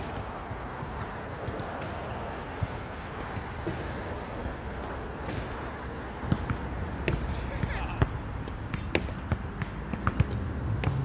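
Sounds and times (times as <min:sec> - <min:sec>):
basketball bouncing on hard court: 0:05.2 - 0:11.0.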